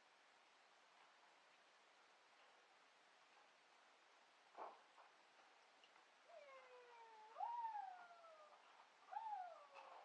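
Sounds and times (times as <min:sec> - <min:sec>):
animal cries sliding down in pitch: 0:06.3 - 0:10.0.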